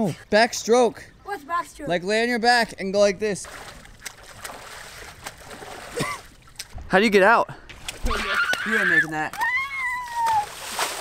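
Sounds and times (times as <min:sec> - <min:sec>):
shallow water splashing: 0:03.4 - 0:06.8, 0:07.7 - 0:11.0.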